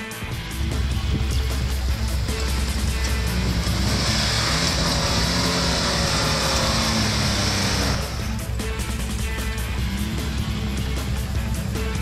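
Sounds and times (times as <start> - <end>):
background music: 0.0 - 12.0
sand hiss and tyre noise: 0.3 - 12.0
car engine revving: 0.4 - 12.0.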